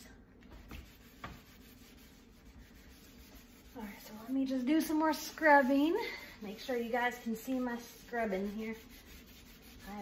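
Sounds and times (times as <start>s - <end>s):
scrubbing pad rubbing glass: 0.6s - 10.0s.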